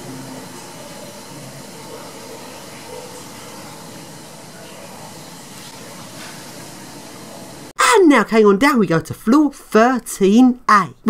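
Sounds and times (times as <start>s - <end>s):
steady hiss: 0.0s - 7.7s.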